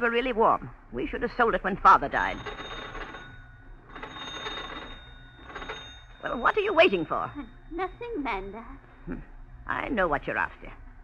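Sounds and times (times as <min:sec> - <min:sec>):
telephone bell ringing: 0:02.2 - 0:08.0.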